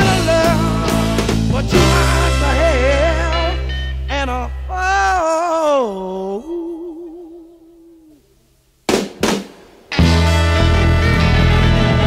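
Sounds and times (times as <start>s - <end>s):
blues-rock band playing: 0.0s - 4.5s, 8.9s - 12.0s.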